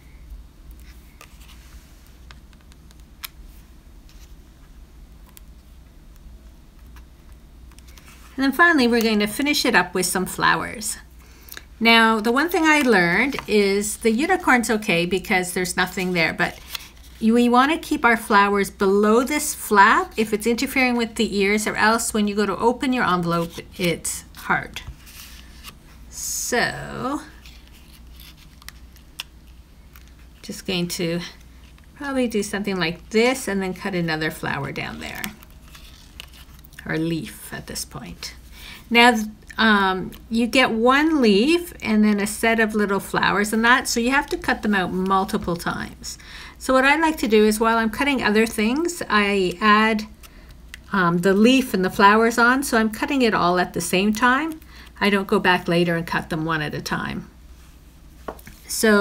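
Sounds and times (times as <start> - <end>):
low steady hum: 0.0 - 59.0
paper handling: 34.0 - 37.4.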